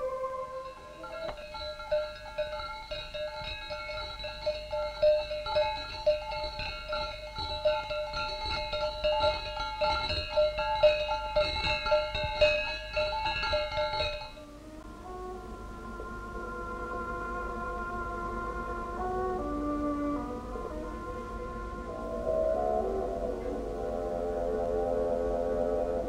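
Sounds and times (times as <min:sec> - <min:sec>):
camel bells clanking: 0:00.0 - 0:14.6.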